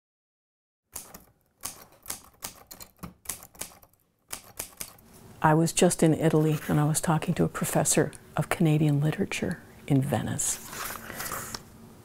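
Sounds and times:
typewriter keys clacking: 0:01.0 - 0:05.0.

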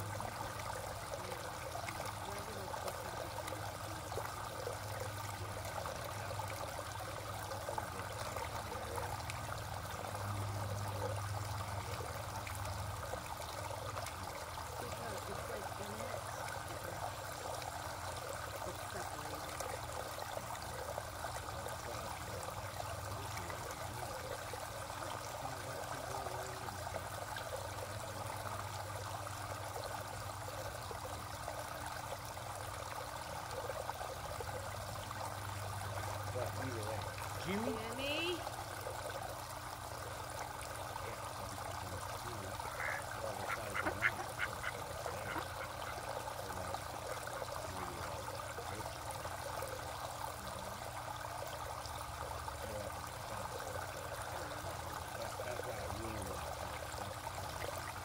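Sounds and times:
pond water trickling: 0:00.0 - 0:58.0.

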